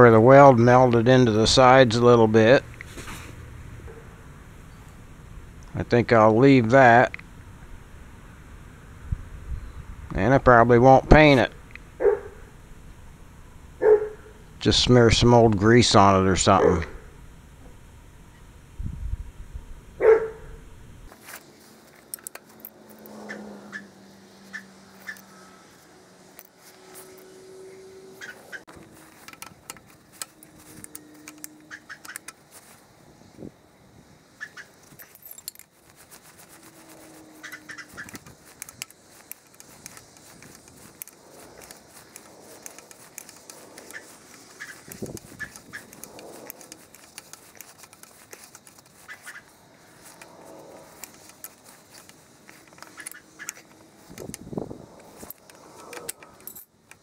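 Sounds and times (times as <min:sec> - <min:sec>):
dog barks sped up: 0:12.0 - 0:12.4, 0:13.8 - 0:14.2, 0:20.0 - 0:20.5
wrenches clicking on metal: 0:21.2 - 0:23.4, 0:28.2 - 0:32.8, 0:34.5 - 0:57.0.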